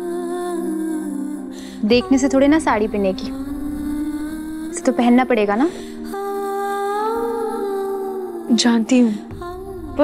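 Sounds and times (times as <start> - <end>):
steady drone: 1.6 - 6.5.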